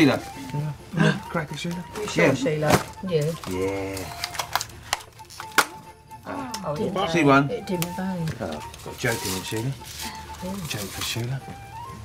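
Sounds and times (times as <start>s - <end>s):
christmas cracker snapping: 3.4s - 5.8s.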